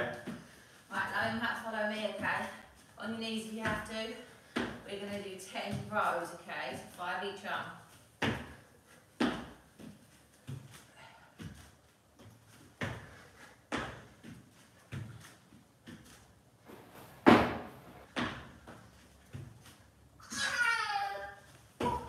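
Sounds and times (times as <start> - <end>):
thumps on exercise mats: 3.5 - 6.1, 8.2 - 10.8, 12.2 - 19.7, 21.8 - 22.0.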